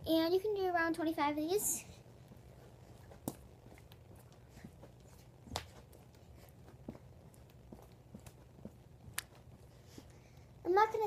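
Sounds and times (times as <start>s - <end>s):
faint foot taps: 2.2s - 10.4s.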